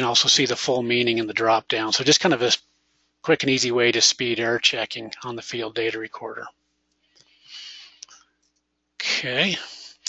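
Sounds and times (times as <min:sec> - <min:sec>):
faint breath: 0:07.0 - 0:08.4.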